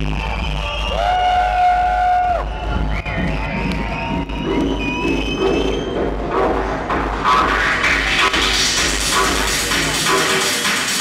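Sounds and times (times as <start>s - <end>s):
steady low bass: 0.0s - 11.0s.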